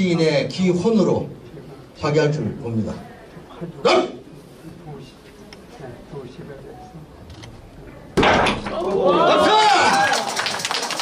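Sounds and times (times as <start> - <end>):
man shouting: 3.8 - 4.2, 9.1 - 10.1.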